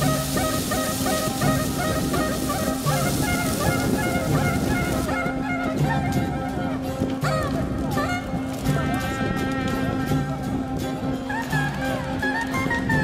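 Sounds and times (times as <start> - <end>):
bonfire crackling: 0.0 - 12.8
reedy folk melody over drone: 0.0 - 13.0.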